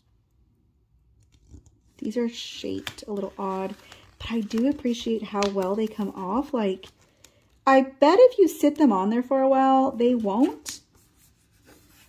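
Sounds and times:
sticker crackling on paper: 0:01.2 - 0:07.4.

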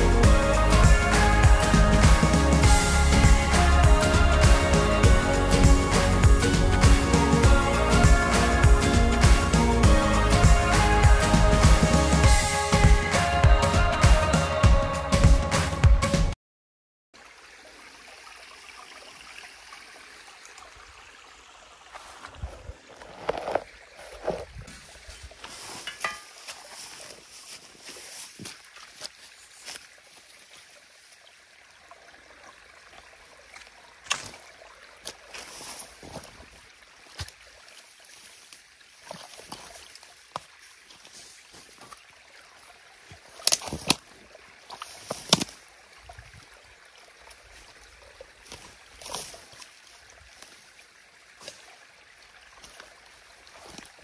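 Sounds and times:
water trickling: 0:00.0 - 0:13.1, 0:17.2 - 0:54.0
rake scraping through mud: 0:22.0 - 0:28.3.

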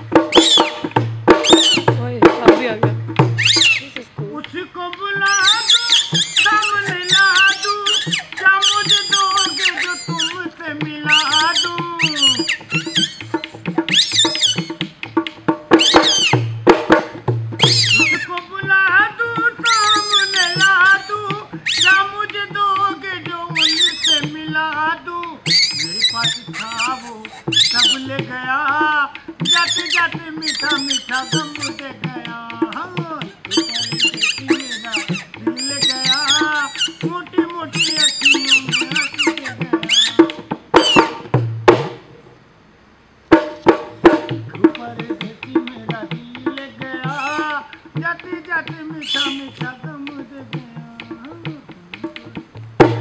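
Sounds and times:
music: 0:00.0 - 0:42.1, 0:43.3 - 0:53.0
light drum beat: 0:00.0 - 0:42.2, 0:43.2 - 0:53.0
squeaky warbling reed whistle: 0:00.2 - 0:02.0, 0:03.2 - 0:04.0, 0:05.2 - 0:14.9, 0:15.7 - 0:16.6, 0:17.5 - 0:18.4, 0:19.6 - 0:22.3, 0:23.4 - 0:24.5, 0:25.4 - 0:28.2, 0:29.4 - 0:32.1, 0:33.4 - 0:41.3, 0:46.9 - 0:47.7, 0:48.9 - 0:49.7.

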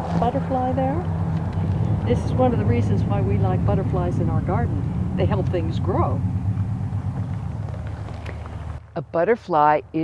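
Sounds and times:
low mechanical rumble: 0:00.0 - 0:10.0.

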